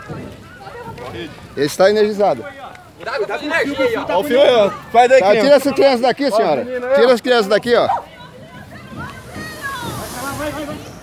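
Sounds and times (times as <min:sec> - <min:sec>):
steady high hiss: 0:08.7 - 0:11.0.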